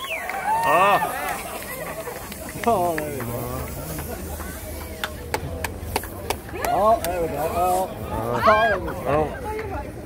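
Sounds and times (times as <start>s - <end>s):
low crowd chatter: 0.0s - 10.0s.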